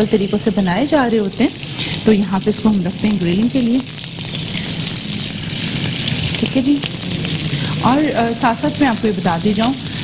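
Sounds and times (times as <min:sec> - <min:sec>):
patty sizzling on grill pan: 0:00.0 - 0:10.0.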